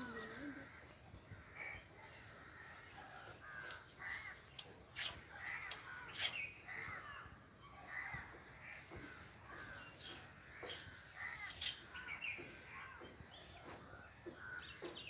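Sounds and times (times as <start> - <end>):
crows cawing: 0.0 - 13.2, 13.9 - 15.0.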